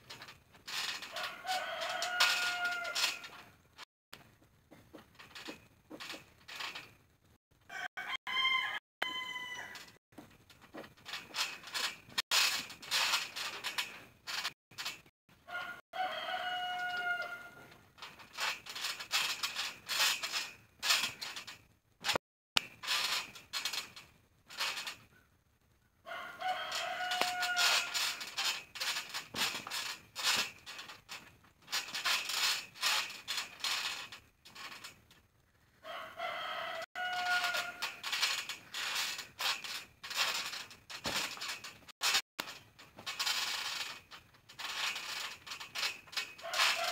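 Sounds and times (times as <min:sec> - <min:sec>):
trampoline thumps and knocks: 0:00.0 - 0:03.6, 0:04.4 - 0:07.4, 0:09.8 - 0:15.1, 0:16.4 - 0:25.1, 0:26.6 - 0:35.2, 0:37.0 - 0:46.9
rooster crowing: 0:01.2 - 0:03.0, 0:07.7 - 0:09.8, 0:15.5 - 0:17.6, 0:26.1 - 0:28.0, 0:35.8 - 0:37.8.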